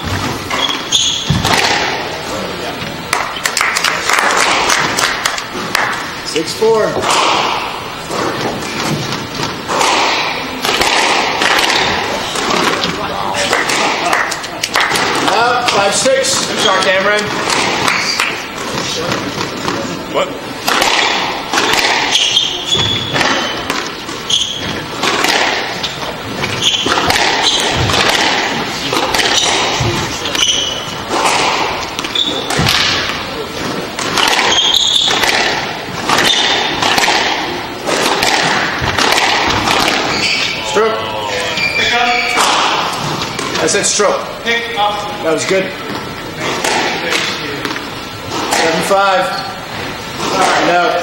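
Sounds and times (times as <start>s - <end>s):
shoes squeaking on wooden floor: 0.0s - 1.6s, 7.7s - 10.4s, 21.6s - 36.9s, 37.9s - 43.6s
squash ball hits: 0.0s - 2.2s, 3.0s - 6.1s, 6.9s - 19.9s, 20.6s - 40.6s, 42.3s - 43.6s, 46.4s - 47.5s, 48.3s - 51.0s.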